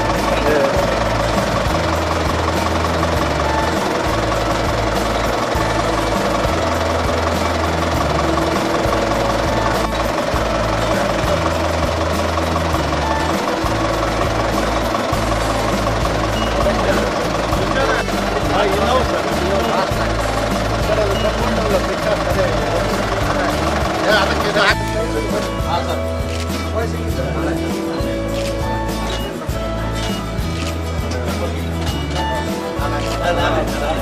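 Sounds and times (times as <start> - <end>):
background music with bass line: 0.0 - 34.0.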